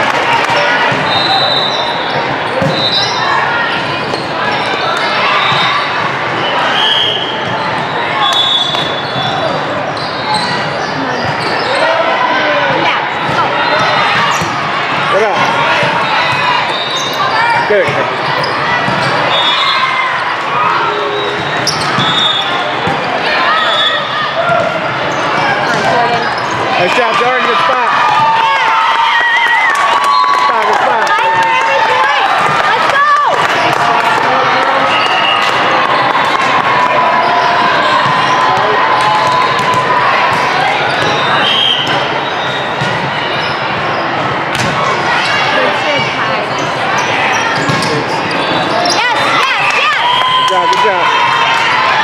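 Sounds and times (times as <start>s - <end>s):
many voices echoing: 0.0s - 52.0s
volleyball hits: 2.2s - 3.1s, 6.8s - 9.6s, 31.2s - 43.2s, 44.4s - 45.0s, 47.6s - 48.1s
shoe squeaks on court: 20.9s - 22.5s, 46.5s - 49.2s.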